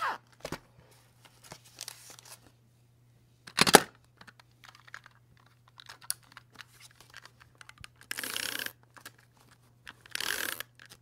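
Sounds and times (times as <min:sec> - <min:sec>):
plastic clicks clattering: 0:03.5 - 0:08.2, 0:09.9 - 0:11.0.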